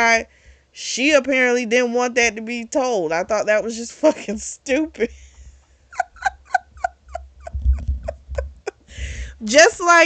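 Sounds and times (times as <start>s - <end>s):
woman laughing: 5.9s - 9.4s.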